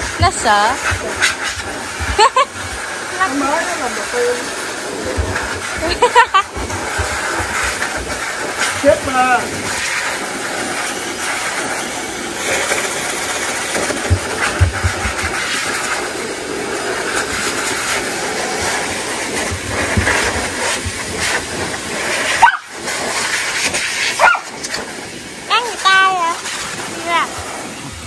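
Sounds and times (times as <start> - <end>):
blower rushing air hiss: 0.0 - 28.0.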